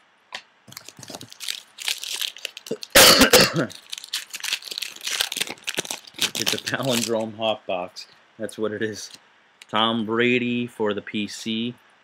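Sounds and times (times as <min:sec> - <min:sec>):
man coughing: 0:02.7 - 0:03.8.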